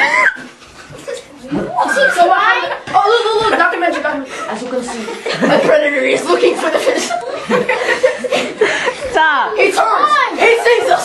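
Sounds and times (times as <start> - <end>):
children laughing: 0.0 - 11.0
people talking: 1.0 - 7.8, 9.0 - 11.0.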